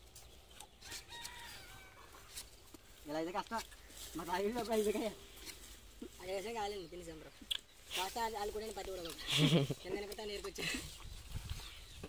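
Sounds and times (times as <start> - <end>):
rooster crowing: 0.8 - 2.2.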